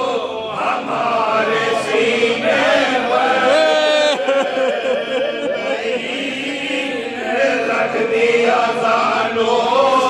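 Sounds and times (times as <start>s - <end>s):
men chanting slowly together: 0.0s - 10.0s.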